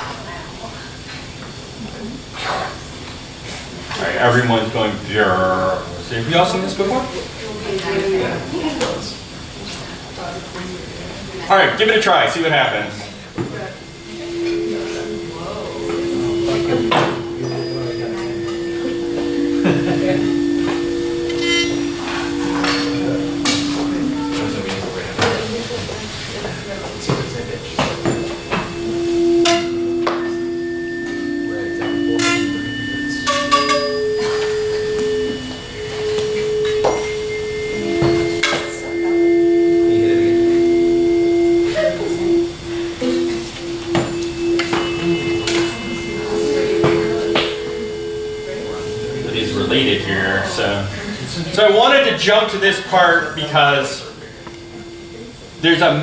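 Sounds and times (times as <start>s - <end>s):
tuning forks ringing: 3.4s - 56.0s
tuning fork strike taps: 13.4s - 25.6s, 27.0s - 50.5s, 53.3s - 56.0s.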